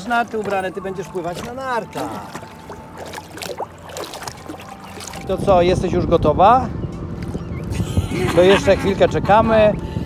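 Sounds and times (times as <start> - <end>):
small splashes: 0.0 - 5.5
water lapping against boat: 0.0 - 10.0.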